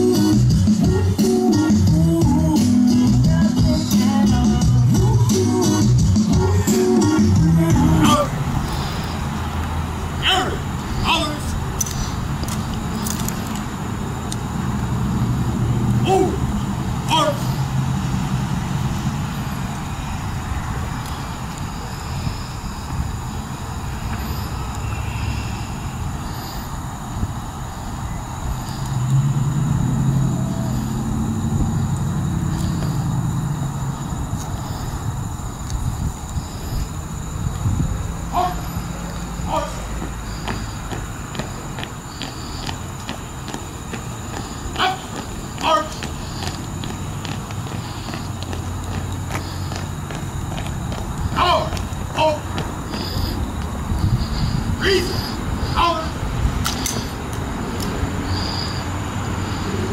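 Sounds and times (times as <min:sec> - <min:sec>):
short rising calls: 0:00.0 - 0:35.1, 0:38.0 - 0:59.9.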